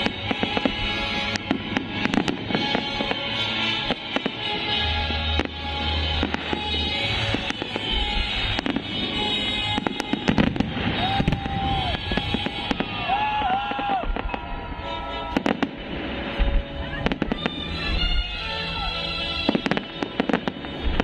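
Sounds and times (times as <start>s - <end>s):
fireworks crackling and banging: 0.0s - 21.0s
music soundtrack: 0.0s - 21.0s.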